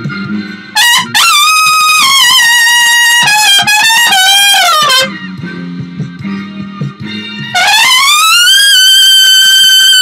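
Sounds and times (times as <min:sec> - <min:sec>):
trumpet high screech note: 0:00.8 - 0:05.2, 0:07.6 - 0:10.0.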